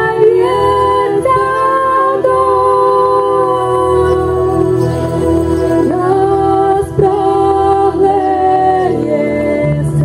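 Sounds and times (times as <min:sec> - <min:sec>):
voices singing worship song: 0:00.0 - 0:10.0.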